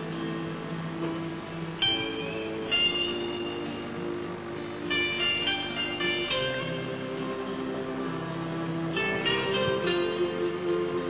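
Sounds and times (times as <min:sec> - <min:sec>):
background music of held notes: 0:00.0 - 0:11.0.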